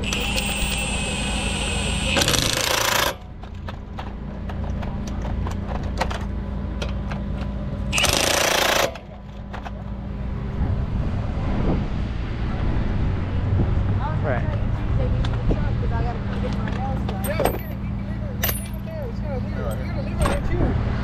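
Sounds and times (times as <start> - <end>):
impact wrench whirring and hammering: 0.0 - 3.6, 7.9 - 9.2
steady low hum: 0.0 - 21.0.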